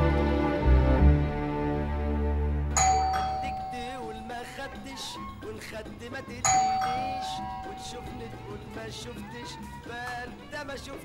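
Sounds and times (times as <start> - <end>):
soft background music: 0.0 - 11.0
doorbell chime: 2.8 - 5.0, 6.4 - 8.5.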